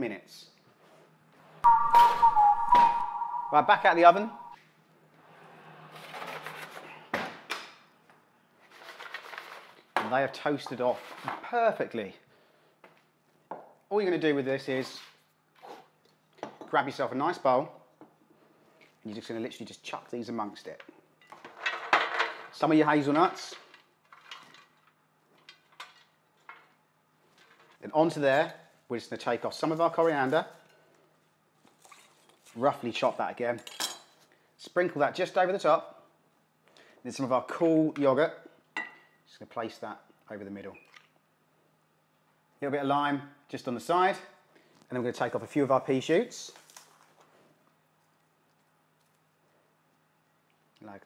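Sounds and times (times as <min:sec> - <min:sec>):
wavering high tone: 0:01.6 - 0:04.6
sharp musical hits: 0:01.7 - 0:04.6.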